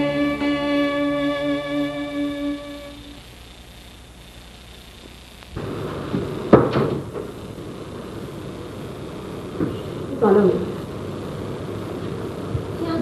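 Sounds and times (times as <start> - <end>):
low hiss: 0.0 - 13.0.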